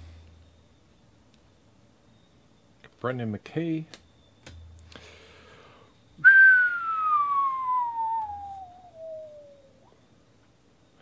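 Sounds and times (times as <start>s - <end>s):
person whistling falling note: 6.2s - 10.0s.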